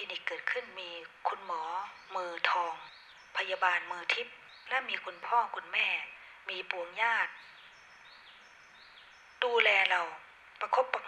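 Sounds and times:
woman speaking: 0.0 - 7.4, 9.4 - 11.0
faint background hiss: 0.0 - 11.0.

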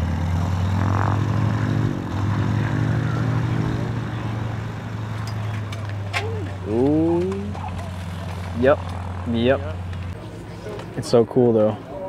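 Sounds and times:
propeller plane engine droning: 0.0 - 12.0
second engine wavering tone: 2.9 - 4.3.

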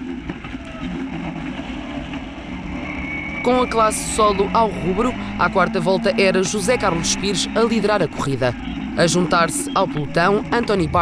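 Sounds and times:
racing car engine running: 0.0 - 11.0.

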